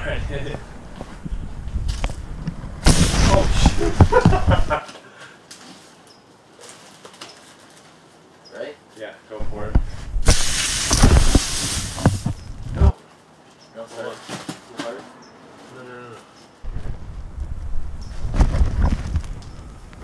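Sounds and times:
hissing rush of spraying water: 2.8s - 4.0s, 10.2s - 12.5s
voices: 13.7s - 16.4s.

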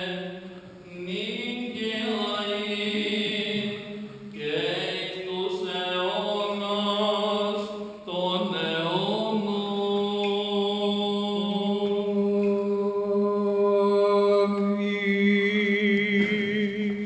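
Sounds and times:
unaccompanied chant: 0.0s - 17.0s.

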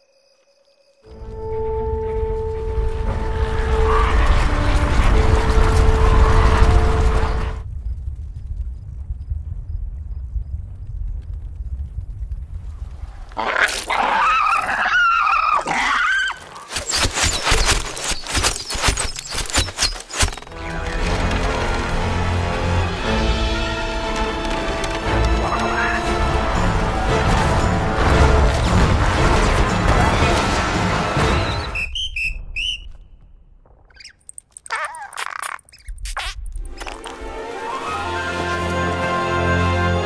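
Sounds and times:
orchestral music: 1.1s - 7.6s, 20.5s - 31.8s, 36.7s - 40.0s
low rumble: 1.1s - 13.5s
squeaky chattering calls: 33.9s - 36.4s.

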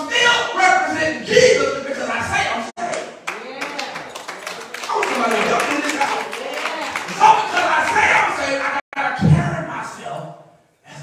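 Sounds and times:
man preaching: 0.0s - 3.2s, 4.8s - 11.0s
hand claps: 2.8s - 8.8s.

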